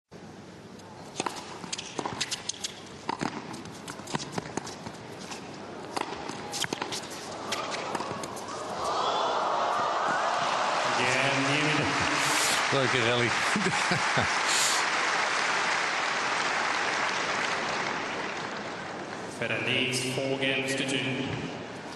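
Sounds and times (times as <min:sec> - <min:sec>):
racket striking tennis ball: 0:01.1 - 0:05.0, 0:05.9 - 0:08.4
crowd cheering and applauding: 0:08.8 - 0:19.1.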